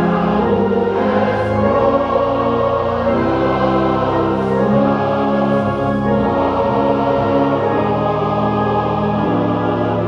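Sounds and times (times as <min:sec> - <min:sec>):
choir and congregation singing: 0:00.0 - 0:10.0.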